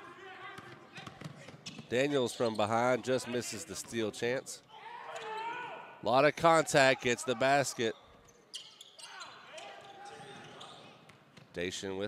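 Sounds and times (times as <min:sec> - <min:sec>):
basketball bouncing: 0:00.5 - 0:01.9
sneakers squeaking on floor: 0:00.6 - 0:03.0, 0:07.9 - 0:11.6.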